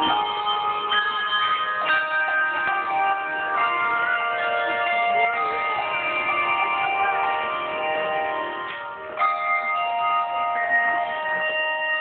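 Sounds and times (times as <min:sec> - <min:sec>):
handbells ringing: 0:00.0 - 0:12.0
higher bell tone: 0:00.0 - 0:12.0.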